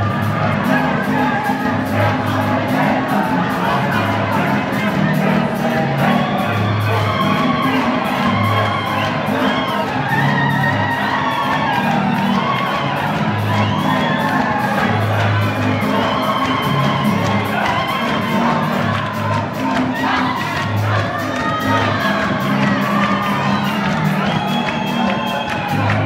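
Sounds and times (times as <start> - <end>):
crowd cheering: 0.0 - 26.0
live band music: 0.0 - 26.0
singers on microphones: 0.0 - 26.0.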